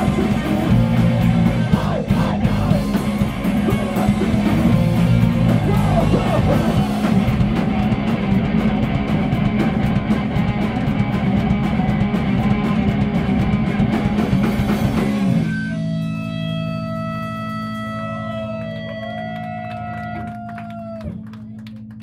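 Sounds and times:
punk band playing: 0:00.0 - 0:21.4
ringing guitar tones: 0:14.7 - 0:20.1.

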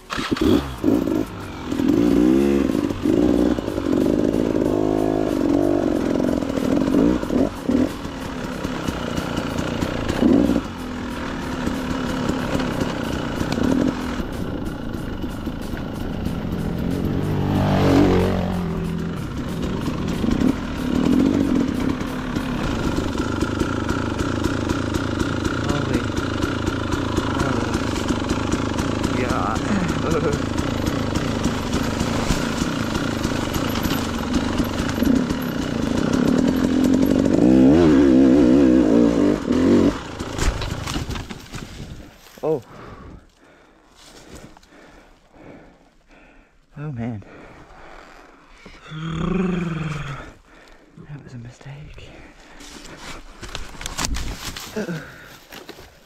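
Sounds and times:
dirt bike engine revving: 0:00.0 - 0:41.5.

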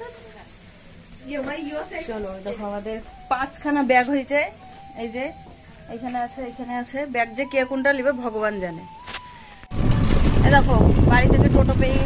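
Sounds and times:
woman talking: 0:01.2 - 0:09.0, 0:10.4 - 0:12.0
vehicle road noise: 0:08.9 - 0:12.0.

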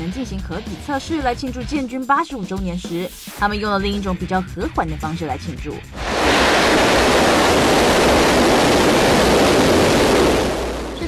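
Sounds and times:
missiles launching roar: 0:06.0 - 0:11.0.

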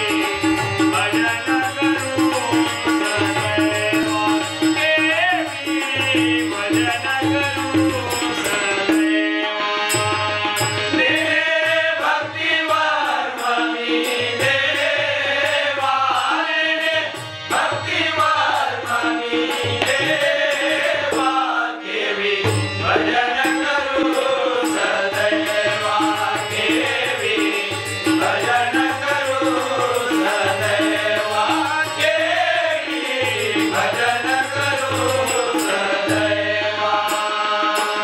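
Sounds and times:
harmonium: 0:00.0 - 0:38.0
male chorus singing: 0:00.0 - 0:38.0
tabla: 0:00.0 - 0:38.0.

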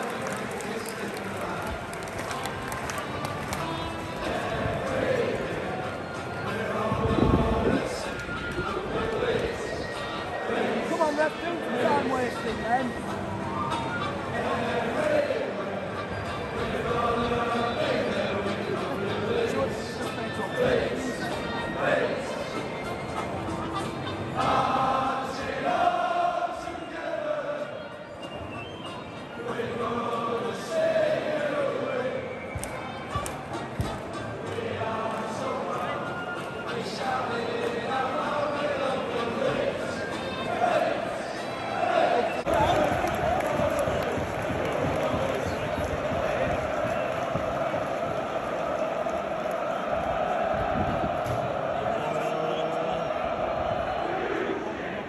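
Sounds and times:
stadium crowd din: 0:00.0 - 0:55.0.

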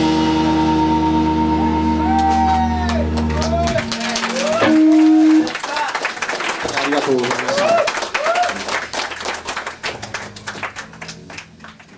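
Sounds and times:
audience applauding: 0:02.0 - 0:11.9.

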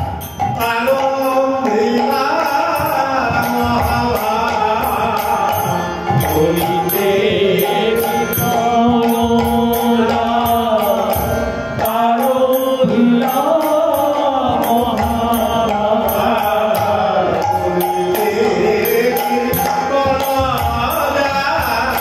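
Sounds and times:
harmonium: 0:00.0 - 0:22.0
man singing devotional melody: 0:00.0 - 0:22.0.

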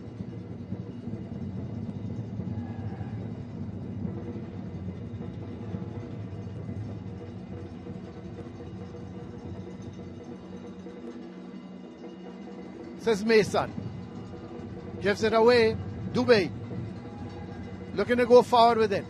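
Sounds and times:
background music: 0:00.0 - 0:19.0
stadium ambience: 0:00.0 - 0:19.0.

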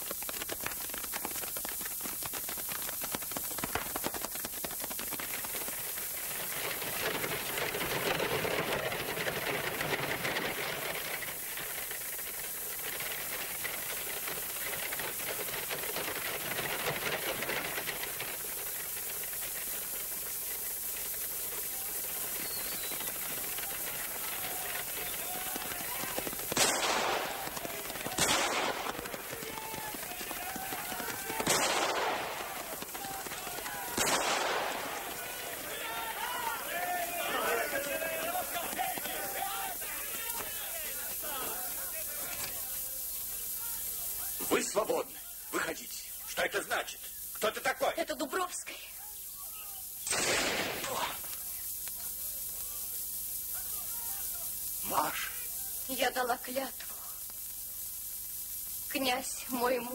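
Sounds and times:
old film soundtrack hiss: 0:00.0 - 0:59.9
gunshots: 0:23.5 - 0:35.8, 0:50.0 - 0:51.2
faint shouting: 0:27.2 - 0:31.5, 0:34.8 - 0:42.5.

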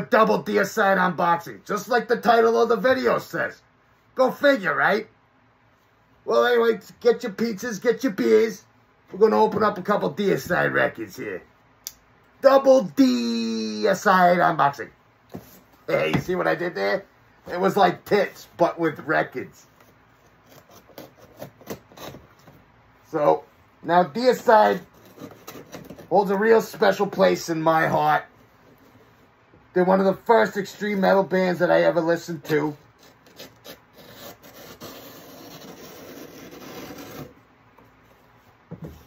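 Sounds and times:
hands scraping cardboard box: 0:19.7 - 0:22.6, 0:24.3 - 0:27.2, 0:32.4 - 0:37.4.

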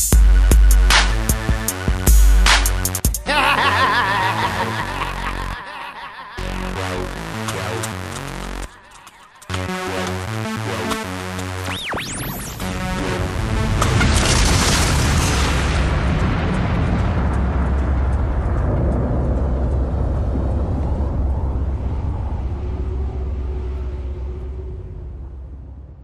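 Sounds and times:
deep rumble: 0:12.4 - 0:26.0.

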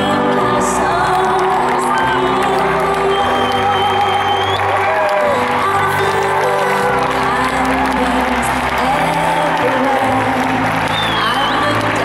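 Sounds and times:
crowd cheering and whooping: 0:00.0 - 0:12.0
live concert music with held chords: 0:00.0 - 0:12.0.

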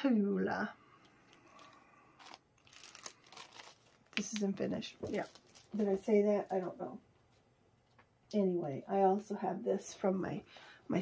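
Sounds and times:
plastic sleeves crinkling: 0:01.3 - 0:06.8.

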